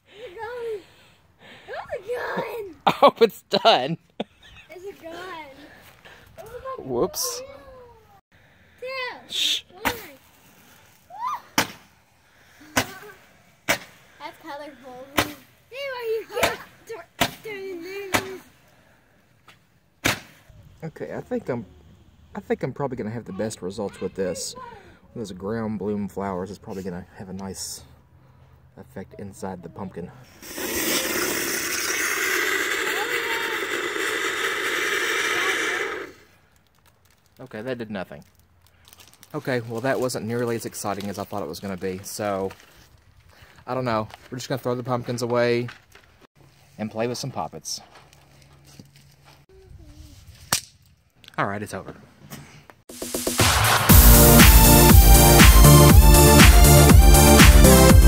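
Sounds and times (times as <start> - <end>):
firework hissing: 30.3 - 35.8, 52.9 - 55.4.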